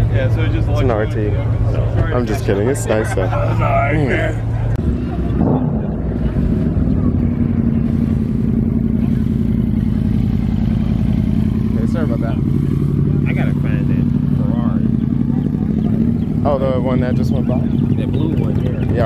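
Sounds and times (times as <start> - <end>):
motorcycle engine at low revs: 4.6 - 19.0.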